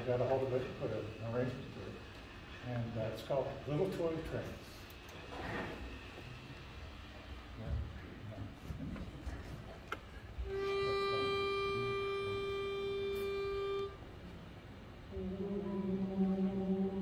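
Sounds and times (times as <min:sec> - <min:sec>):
pitch pipe note: 0:10.5 - 0:14.0.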